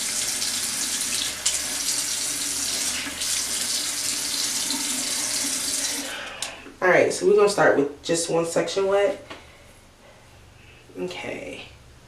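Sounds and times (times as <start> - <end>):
water running from a tap: 0.0 - 6.2.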